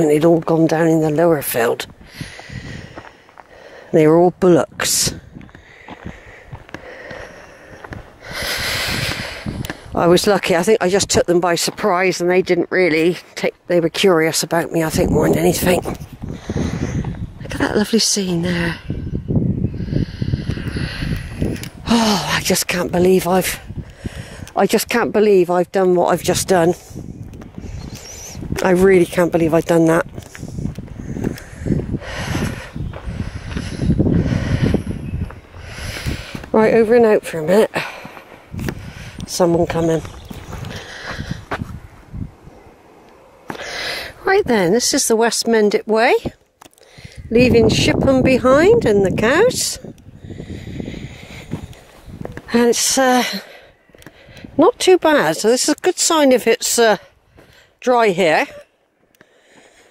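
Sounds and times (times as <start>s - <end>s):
footsteps on stony track: 0.0s - 17.6s, 22.4s - 41.9s, 46.0s - 59.9s
person breathing out heavily: 2.0s - 4.0s, 5.2s - 10.0s, 16.3s - 17.1s, 23.6s - 24.6s, 30.2s - 36.5s, 40.6s - 41.6s, 43.5s - 44.2s, 46.8s - 47.3s, 50.1s - 52.1s, 59.2s - 59.9s.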